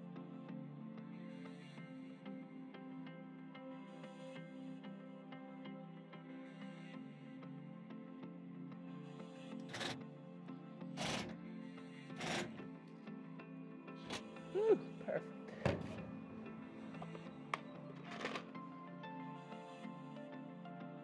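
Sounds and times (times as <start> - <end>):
soft background music: 0.0 - 21.0
knocks and clicks on console: 15.6 - 16.2.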